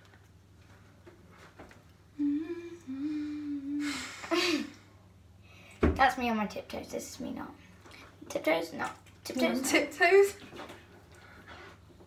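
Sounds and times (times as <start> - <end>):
girl humming: 2.2 - 4.8.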